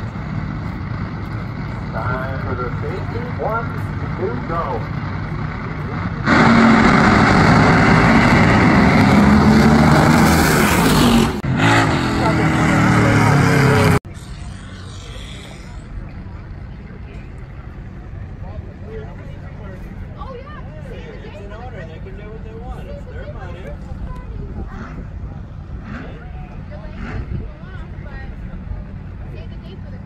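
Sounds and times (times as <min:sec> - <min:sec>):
drag racing cars at full throttle: 0:00.0 - 0:30.0.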